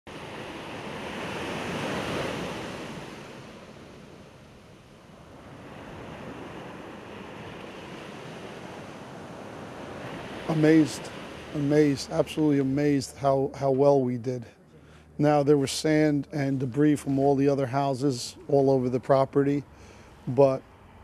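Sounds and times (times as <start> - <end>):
ocean waves breaking: 0.1 - 21.0.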